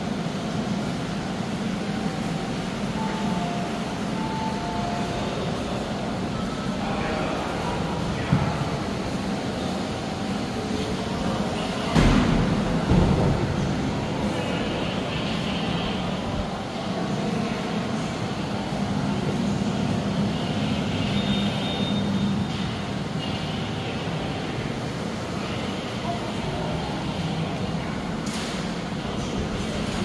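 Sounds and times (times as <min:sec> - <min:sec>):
ventilation plant droning: 0:00.0 - 0:30.0.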